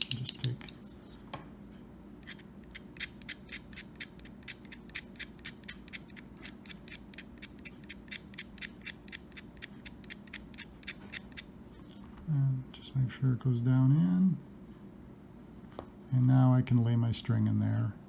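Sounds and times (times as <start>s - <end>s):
knife blade scraping pencil lead: 2.2s - 11.5s.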